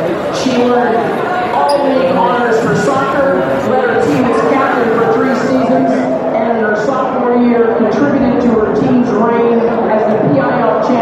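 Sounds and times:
announcer over public-address system: 0.0 - 7.8.

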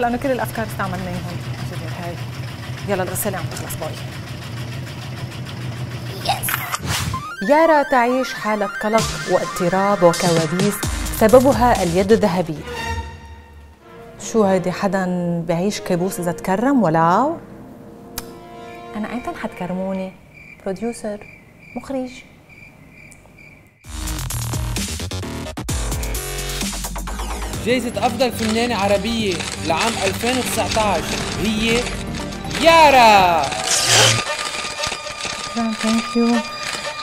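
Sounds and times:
washing machine humming: 0.0 - 6.6
electronic music with heavy beat: 7.0 - 12.2, 23.9 - 28.1
cricket chirping: 18.8 - 23.9.

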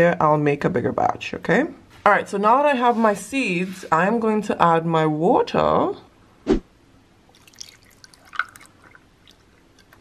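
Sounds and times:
water dripping and splashing: 7.3 - 10.0.

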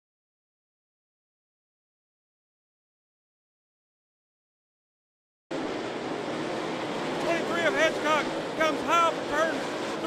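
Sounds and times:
race car engines at speed: 5.5 - 10.0.

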